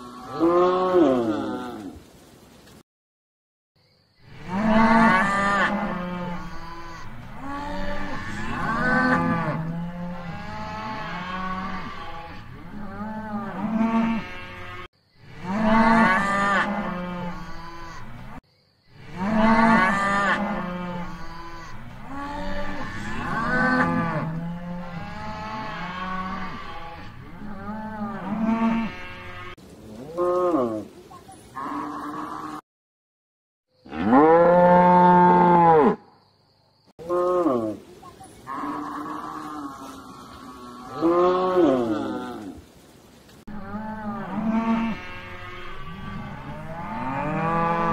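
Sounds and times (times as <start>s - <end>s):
cattle mooing: 4.4s - 18.1s, 19.1s - 30.8s, 43.5s - 47.9s.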